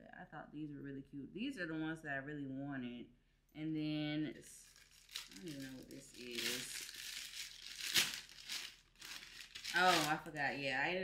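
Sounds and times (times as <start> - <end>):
plastic bag crinkling: 4.6 - 10.7.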